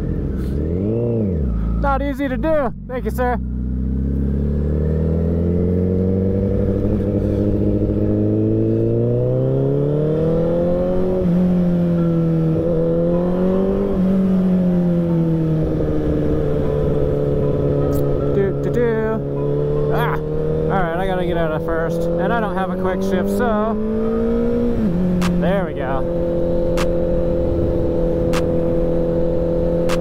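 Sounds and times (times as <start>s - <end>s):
motorcycle engine revving: 0.0s - 30.0s
person speaking: 19.9s - 23.8s, 25.2s - 26.1s.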